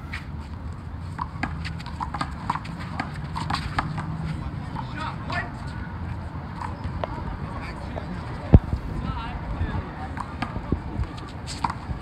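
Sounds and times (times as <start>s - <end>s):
sneaker squeaks: 0.0s - 7.2s, 11.0s - 12.0s.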